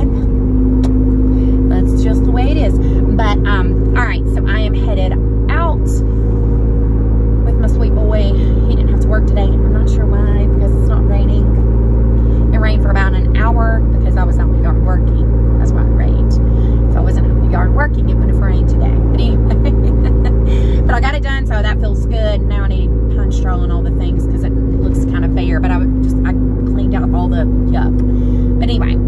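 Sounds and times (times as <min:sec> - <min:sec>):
woman talking: 0:00.0 - 0:06.1, 0:07.4 - 0:11.6, 0:12.4 - 0:29.0
engine and road drone: 0:00.0 - 0:29.0.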